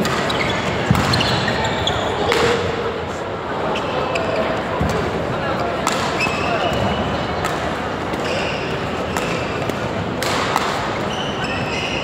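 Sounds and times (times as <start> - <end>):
shoe squeaks on court: 0.0 - 2.5, 8.2 - 9.6, 11.0 - 12.0
voices and chatter: 0.0 - 12.0
racket hitting shuttlecock: 9.0 - 11.1.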